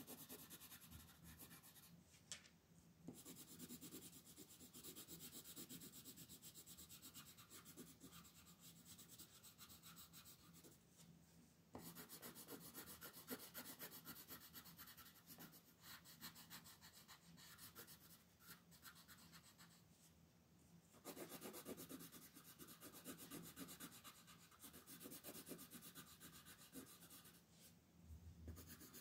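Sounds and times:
pencil scratching on paper: 0.0 - 1.9, 3.1 - 10.8, 11.7 - 19.8, 21.0 - 27.7, 28.5 - 29.0.

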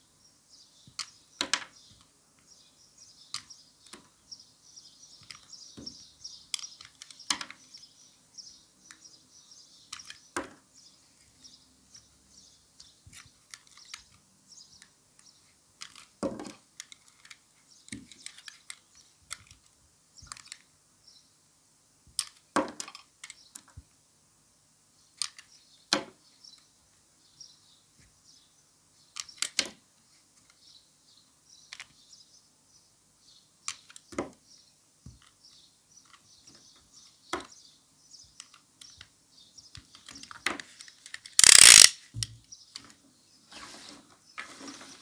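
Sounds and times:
utility knife blade ratcheting: 41.4 - 42.0.

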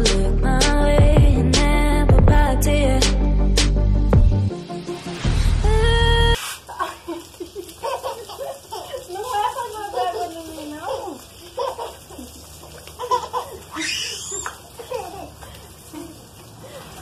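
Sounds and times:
hose water splashing on floor: 4.7 - 17.0
toddler laughing: 6.8 - 16.2.

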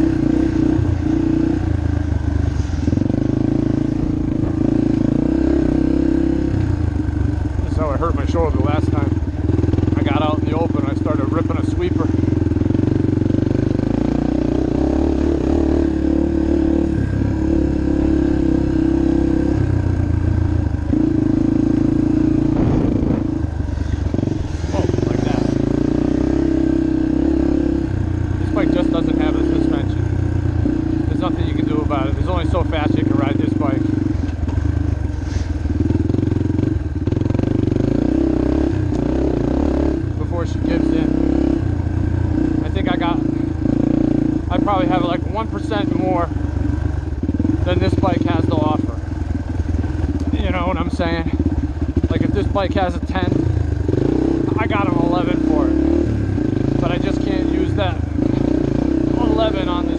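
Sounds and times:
dirt bike engine running hard: 0.0 - 59.9.

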